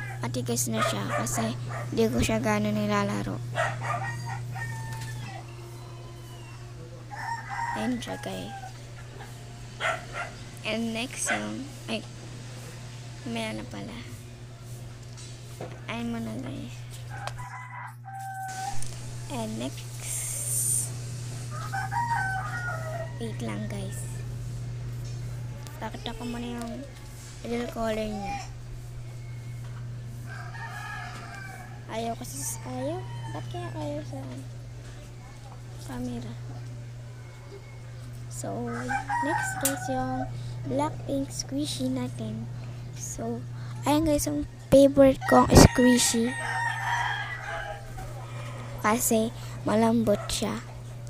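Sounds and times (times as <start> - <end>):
rooster crowing: 0.0 - 1.9, 3.4 - 10.6, 17.0 - 19.7, 20.9 - 24.4, 26.8 - 34.4, 36.0 - 40.7, 44.3 - 49.5
steady low hum: 0.0 - 51.0.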